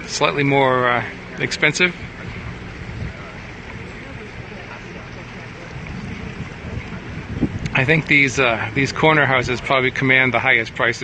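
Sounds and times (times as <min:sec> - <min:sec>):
boat motor humming: 0:00.0 - 0:11.0
water and wind noise: 0:00.0 - 0:11.0.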